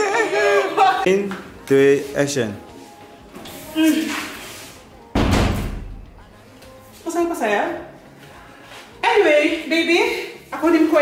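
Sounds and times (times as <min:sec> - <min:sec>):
wooden door slamming: 0:05.1 - 0:06.0.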